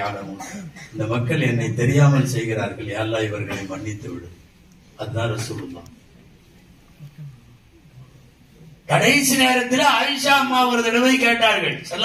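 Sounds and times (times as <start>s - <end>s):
man speaking into a microphone: 0.0s - 4.4s, 5.0s - 6.0s, 8.8s - 12.0s.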